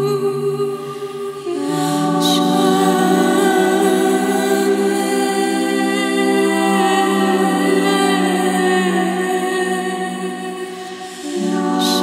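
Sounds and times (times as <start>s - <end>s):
layered vocal harmonies: 0.0s - 12.0s
woman singing sustained notes: 0.0s - 12.0s.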